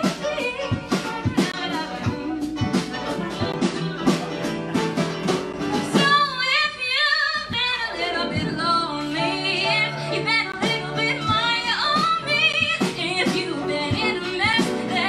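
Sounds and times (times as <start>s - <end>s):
woman singing with vibrato: 0.0s - 4.2s, 5.9s - 15.0s
small band playing: 0.0s - 15.0s.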